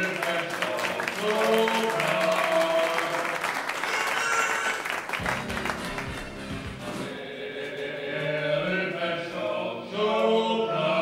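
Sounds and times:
choir singing: 0.0s - 3.5s, 7.0s - 11.0s
audience applause: 0.0s - 6.8s.

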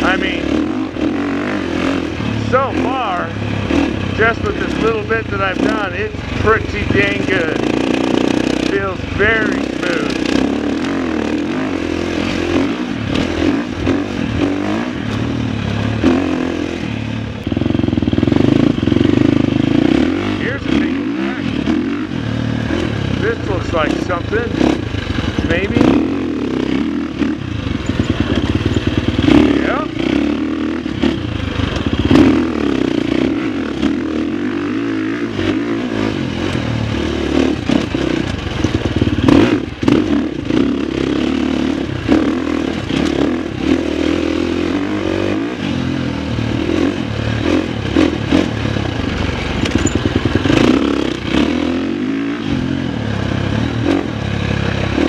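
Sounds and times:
dirt bike engine revving: 0.0s - 55.0s
bike knocking and clattering: 48.8s - 50.7s.

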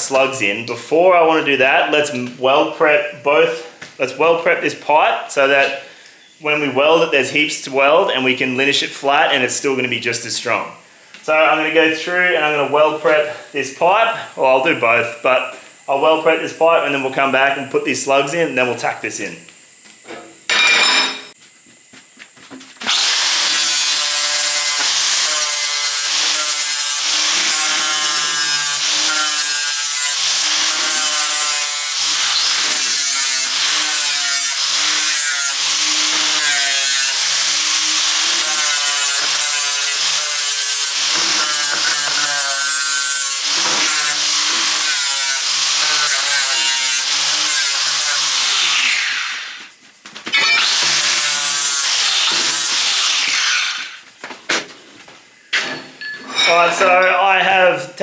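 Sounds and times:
angle grinder grinding metal: 22.8s - 49.7s, 50.3s - 54.0s.

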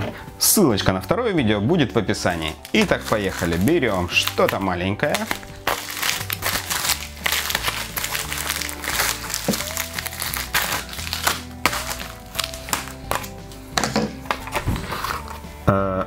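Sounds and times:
background music: 0.0s - 16.0s
plastic bag crinkling and tearing: 2.2s - 13.6s, 14.2s - 15.4s.

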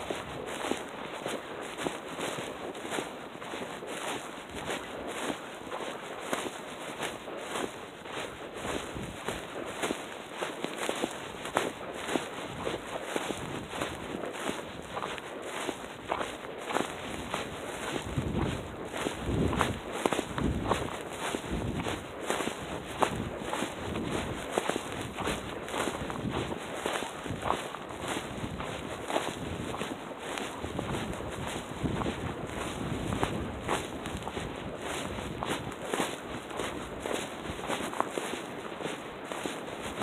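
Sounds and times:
wind rumble on microphone: 0.0s - 6.5s, 7.5s - 10.0s, 10.8s - 40.0s
footsteps on packed snow: 0.0s - 40.0s.

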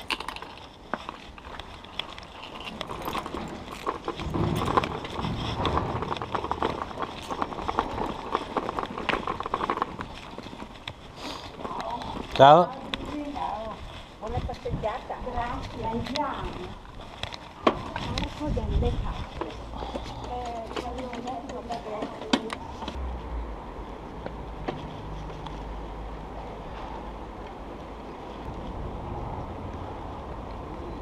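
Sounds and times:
bicycle tyres rumbling on pavement: 0.0s - 31.0s
wind on microphone: 13.6s - 19.8s, 28.4s - 31.0s.

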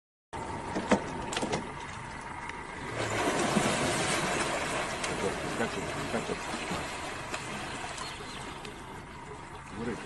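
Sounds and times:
water splashing: 1.3s - 10.0s.

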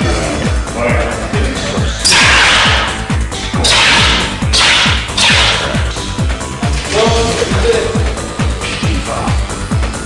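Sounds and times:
electronic dance music: 2.0s - 6.5s.

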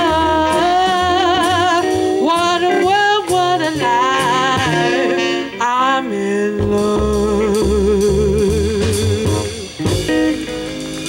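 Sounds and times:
bass line: 0.0s - 11.0s
plucked electric guitar notes: 0.0s - 11.0s.

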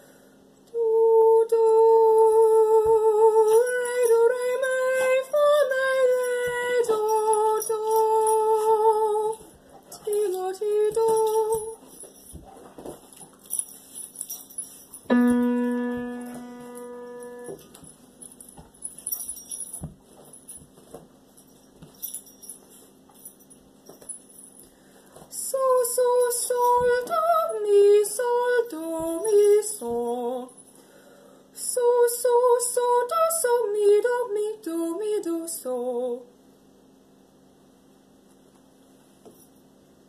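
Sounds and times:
piano note ringing: 15.1s - 18.2s.

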